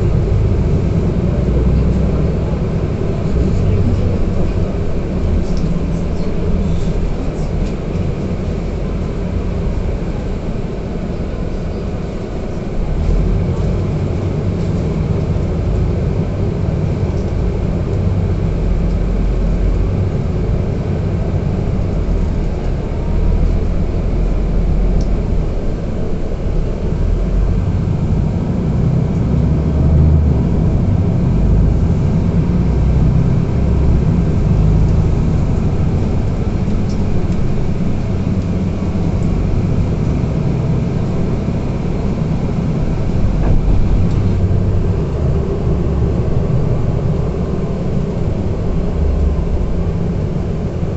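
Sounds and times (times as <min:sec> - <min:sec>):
bus engine and road rumble: 0:00.0 - 0:50.9.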